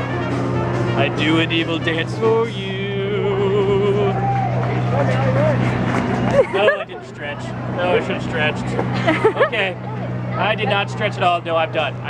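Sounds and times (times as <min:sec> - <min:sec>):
steady low hum: 0:00.0 - 0:12.0
man singing: 0:00.9 - 0:04.3.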